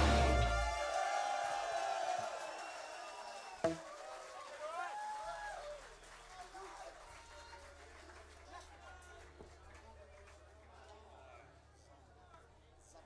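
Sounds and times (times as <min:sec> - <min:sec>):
punk rock chord ringing out: 0:00.0 - 0:00.8
crowd shouting and whooping: 0:00.0 - 0:05.9.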